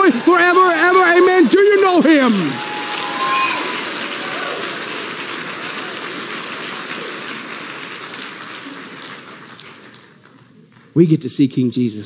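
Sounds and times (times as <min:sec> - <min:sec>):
audience applauding: 0:00.0 - 0:10.9.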